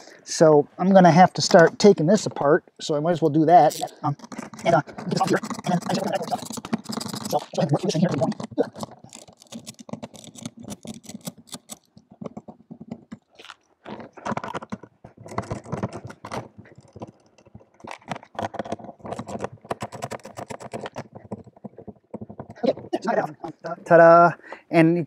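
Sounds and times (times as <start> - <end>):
tools on plastic housing: 3.6 - 23.0.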